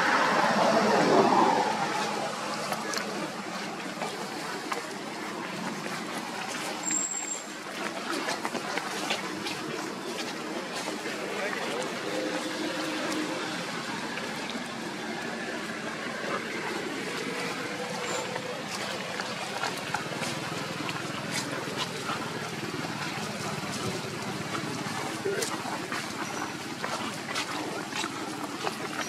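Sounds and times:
indistinct voices: 0.0 - 29.0
rushing outdoor noise: 0.0 - 29.0.

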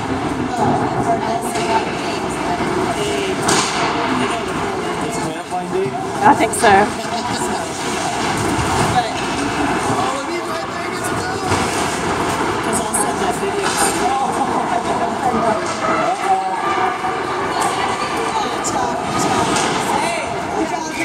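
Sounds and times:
spectators chattering: 0.0 - 21.0.

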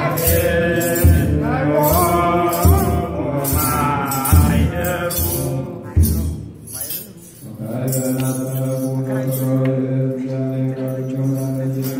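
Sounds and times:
sistrum jingle: 0.0 - 9.6
men chanting low note: 0.0 - 11.9.

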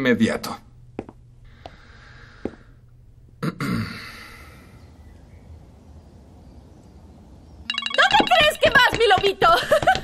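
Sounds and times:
phone ringtone: 7.7 - 8.8.

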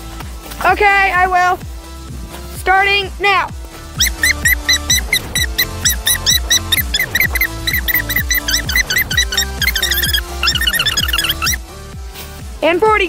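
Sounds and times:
background music with bass beat: 3.6 - 13.0
sped-up boy's voice chirping: 4.0 - 11.6.

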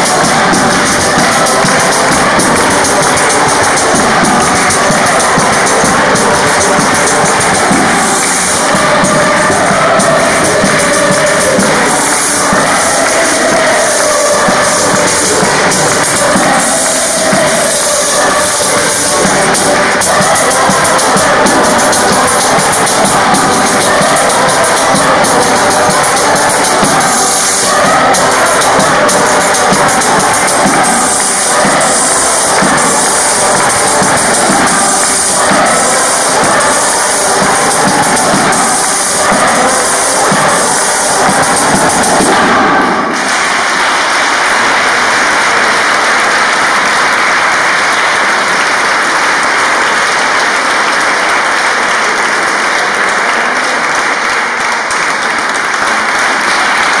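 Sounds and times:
frame drum beating: 0.0 - 43.3
audience applause: 0.0 - 57.0
mixed choir singing: 0.0 - 57.0.

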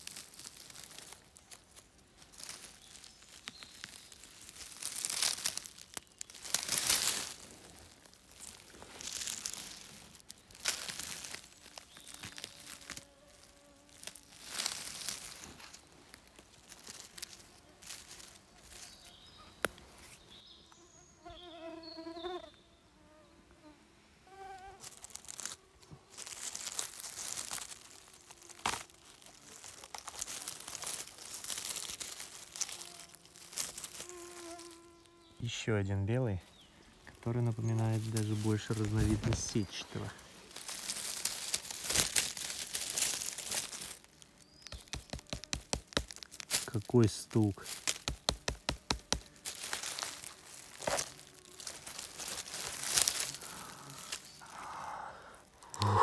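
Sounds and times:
dry leaves and twigs rustling: 0.0 - 20.7, 24.6 - 56.0
fly buzzing: 10.6 - 15.4, 20.7 - 25.8, 28.2 - 30.6, 32.2 - 35.4, 48.0 - 54.8.

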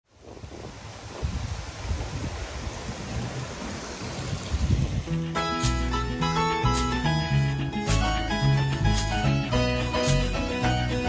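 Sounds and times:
wind buffeting microphone: 0.1 - 5.3
song: 5.1 - 11.0.

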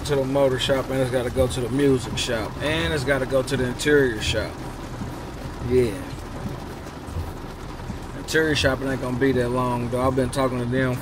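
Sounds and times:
car cabin rumble and hiss: 0.0 - 11.0.

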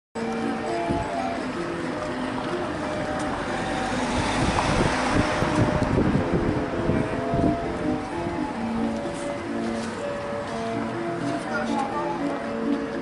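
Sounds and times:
faint music with held notes: 0.2 - 13.0
vehicle passing by: 1.4 - 10.8.

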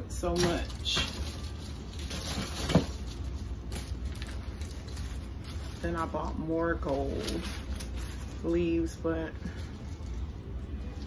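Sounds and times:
steady low hum: 0.0 - 11.0
artificial flowers rustling: 0.2 - 11.0.

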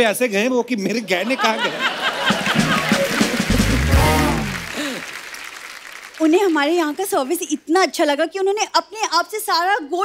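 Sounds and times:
audience applauding and laughing: 1.2 - 6.3
comic music sting falling in pitch: 2.7 - 4.7.

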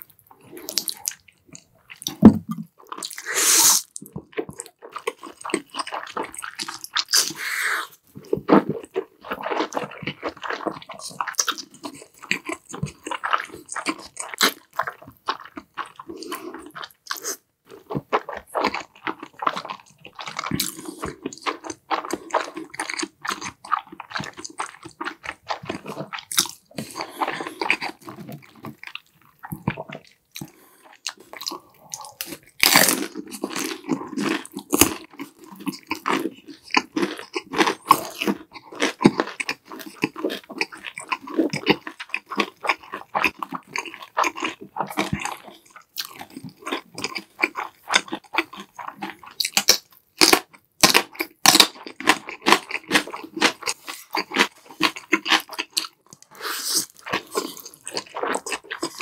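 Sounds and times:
person chewing and crunching food: 0.0 - 59.0.

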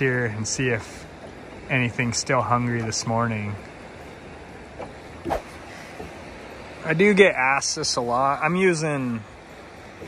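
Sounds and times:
river flowing: 0.0 - 10.0.

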